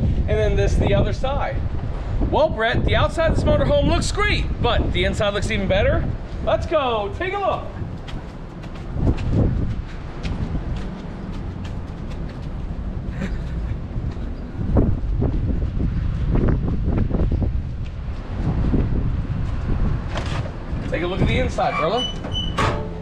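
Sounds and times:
wind buffeting microphone: 0.0s - 23.0s
footsteps on pavement: 7.1s - 21.0s.

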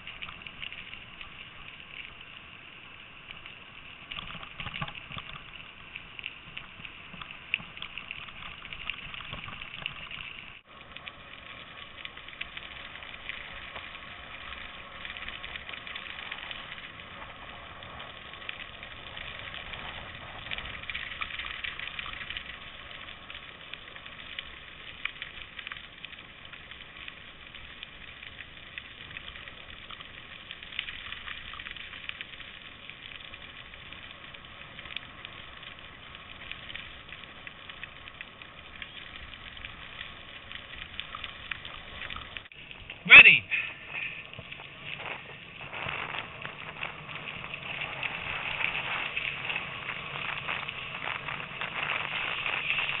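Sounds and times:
bicycle tyres crunching gravel: 4.0s - 53.0s.

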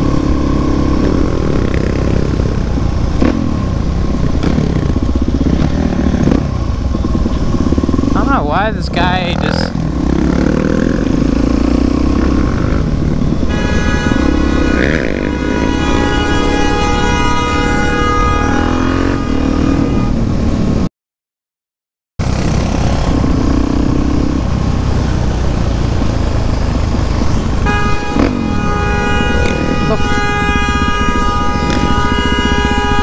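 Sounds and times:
motorcycle engine running: 0.0s - 20.8s, 22.2s - 33.0s
vehicle horn blast: 13.4s - 20.3s, 27.6s - 33.0s.

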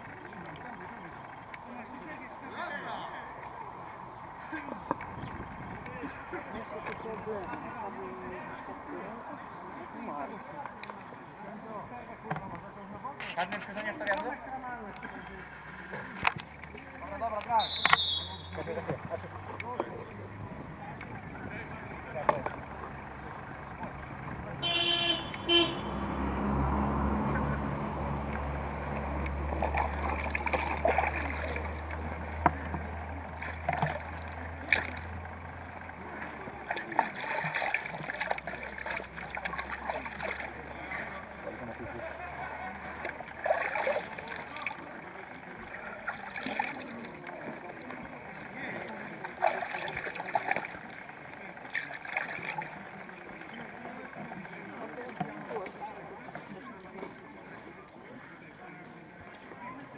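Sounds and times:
low engine rumble: 0.0s - 59.9s
short horn toot: 24.6s - 26.0s.

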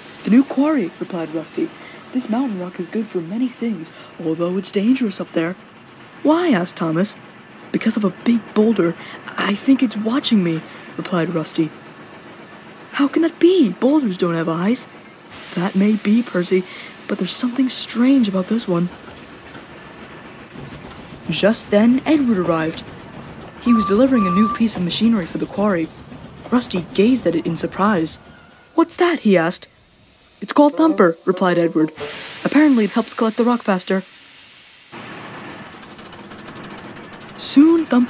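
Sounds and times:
train wheels rumbling on track: 0.0s - 38.0s
rock crushing machine rattling: 35.0s - 38.0s.

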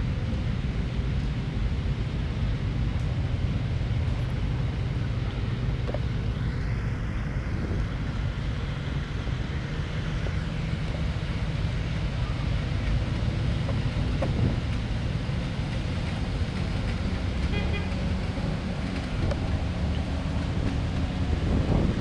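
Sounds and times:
jeep engines driving past: 0.0s - 22.0s.

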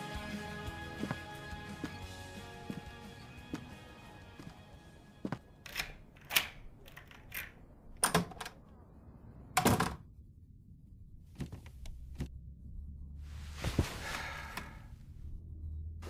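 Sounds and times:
song with sustained chords: 0.0s - 5.4s.

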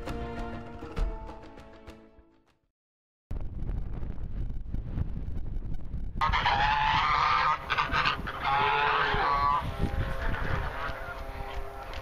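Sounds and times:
wind rumble on microphone: 3.3s - 12.0s
geese honking: 6.2s - 12.0s.

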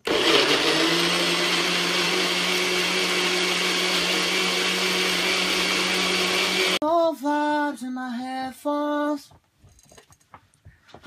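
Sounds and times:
blender motor whine: 0.0s - 6.8s.

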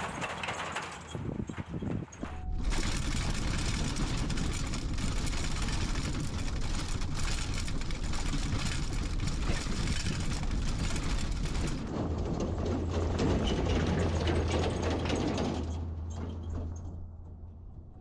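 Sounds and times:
cab rattling and knocking: 0.0s - 17.6s
road and drivetrain noise: 0.0s - 18.0s.

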